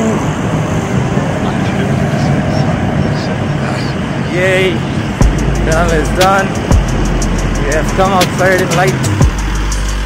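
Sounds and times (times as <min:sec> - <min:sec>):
road noise: 0:00.0 - 0:10.0
wind rushing on microphone: 0:00.0 - 0:10.0.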